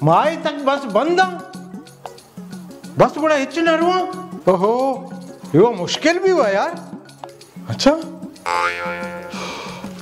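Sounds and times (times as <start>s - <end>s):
background music: 0.0s - 10.0s
loud held musical sound: 4.2s - 10.0s.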